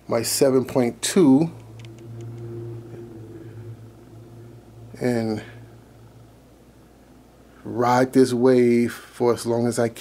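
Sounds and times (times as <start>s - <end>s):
steady low hum: 0.0s - 8.4s
faint high tone: 0.8s - 7.5s.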